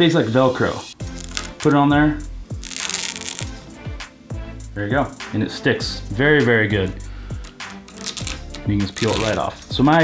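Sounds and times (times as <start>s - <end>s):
background music with soft drums: 0.0s - 10.0s
paper liner peeling off: 1.1s - 1.8s, 2.5s - 3.6s, 7.5s - 9.5s.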